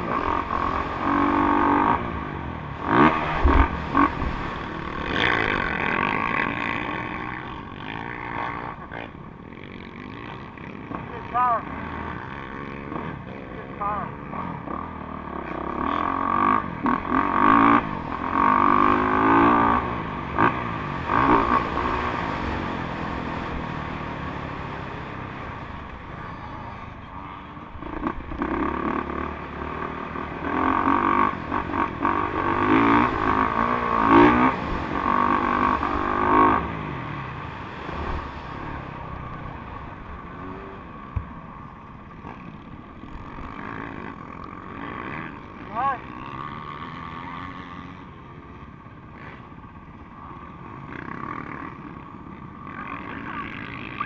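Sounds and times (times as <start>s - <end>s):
motocross bike engine revving: 0.0s - 54.0s.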